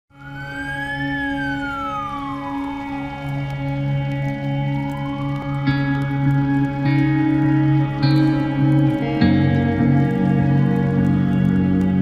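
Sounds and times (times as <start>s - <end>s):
siren wailing: 0.1s - 12.0s
ambient music chord: 0.2s - 12.0s.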